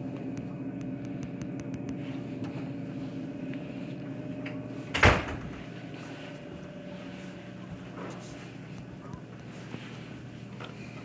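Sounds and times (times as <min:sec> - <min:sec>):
air conditioner humming: 0:00.0 - 0:11.0.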